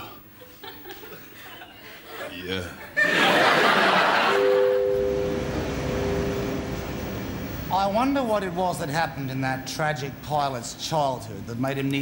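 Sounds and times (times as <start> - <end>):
airliner cabin drone: 3.5 - 7.7
two-note chime: 4.1 - 7.3.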